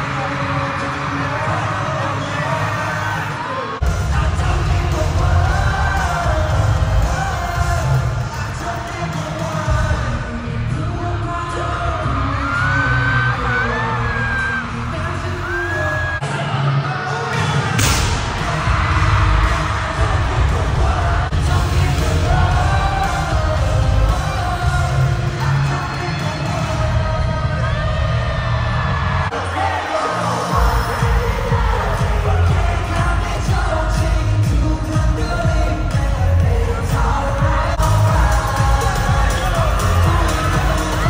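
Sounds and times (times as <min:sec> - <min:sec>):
crowd cheering: 0:00.0 - 0:09.8, 0:11.2 - 0:33.8, 0:36.9 - 0:41.0
pop song with singing: 0:00.0 - 0:41.0.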